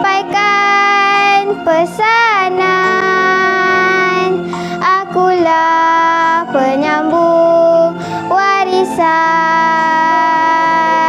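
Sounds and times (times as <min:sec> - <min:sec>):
girl singing long notes: 0:00.0 - 0:11.0
musical backing track: 0:00.0 - 0:11.0.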